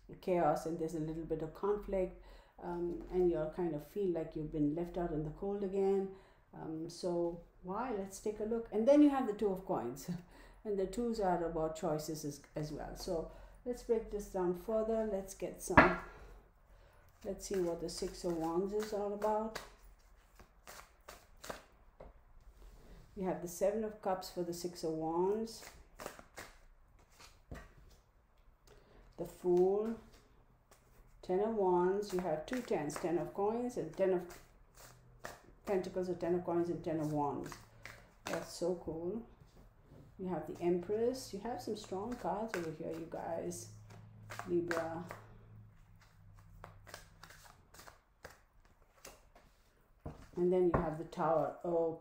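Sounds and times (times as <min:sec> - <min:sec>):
shuffling cards: 0:17.4 - 0:21.8, 0:25.5 - 0:28.0, 0:34.2 - 0:35.9, 0:37.0 - 0:38.6, 0:41.6 - 0:49.6.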